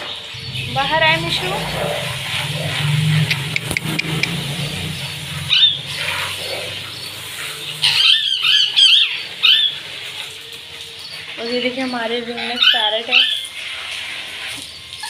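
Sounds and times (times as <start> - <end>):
parakeets screeching: 0.0 - 10.4, 11.0 - 13.9
low steady hum: 0.3 - 7.6.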